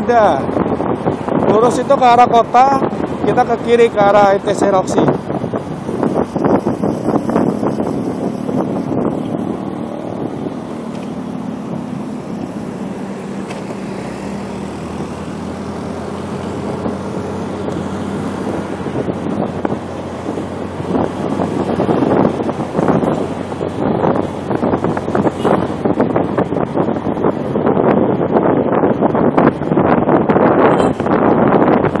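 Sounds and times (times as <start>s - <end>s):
road noise: 0.0s - 32.0s
wind buffeting microphone: 0.0s - 32.0s
motorcycle engine: 4.4s - 32.0s.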